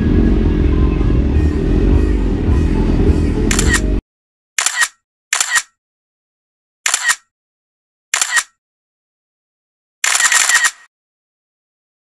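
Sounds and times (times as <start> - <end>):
camera shutter clicks: 4.6 - 5.7, 6.9 - 7.2, 8.1 - 8.6, 10.0 - 10.9.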